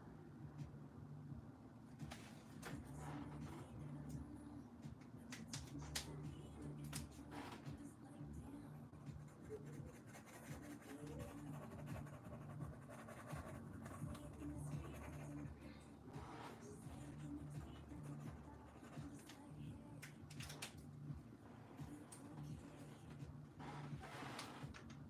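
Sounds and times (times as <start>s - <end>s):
low room hum: 0.0s - 25.0s
pen scratching on paper: 9.1s - 15.6s.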